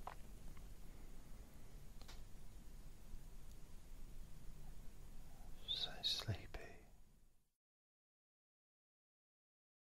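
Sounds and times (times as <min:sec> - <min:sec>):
man whispering: 0:05.2 - 0:07.0.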